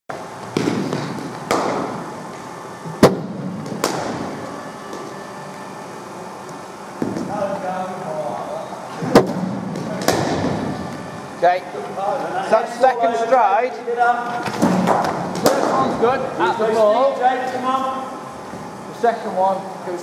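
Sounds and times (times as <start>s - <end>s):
cricket ball striking bat: 0.5s - 2.1s, 3.0s - 5.1s, 9.1s - 10.7s.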